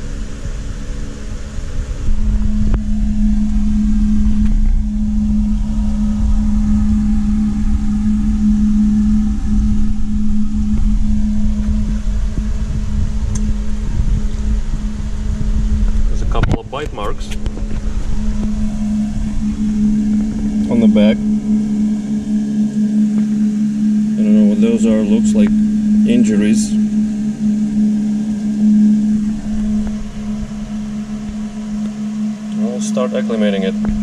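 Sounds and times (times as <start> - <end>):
machine hum with low drone: 0.0 - 34.0.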